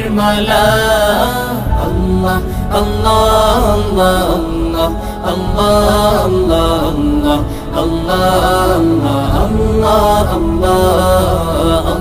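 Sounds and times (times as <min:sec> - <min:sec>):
person chanting a devotional song: 0:00.0 - 0:12.0
steady low backing: 0:00.0 - 0:12.0.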